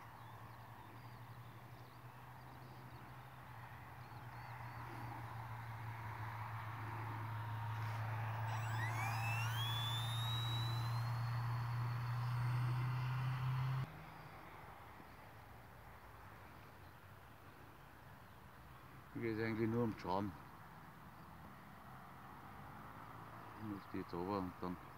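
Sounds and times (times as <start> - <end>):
electric motor whine and drone: 4.2 - 13.9.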